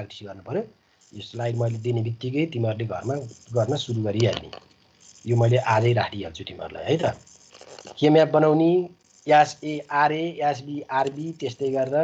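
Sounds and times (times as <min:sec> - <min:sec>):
man lecturing: 0:00.0 - 0:04.6, 0:05.3 - 0:07.2, 0:07.9 - 0:12.0.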